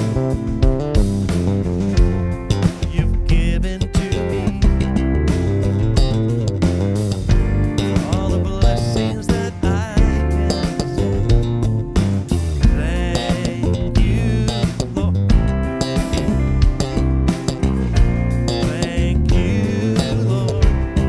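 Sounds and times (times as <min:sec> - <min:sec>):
band playing a slow song: 0:00.0 - 0:21.0
electric bass runs and fills: 0:00.0 - 0:21.0.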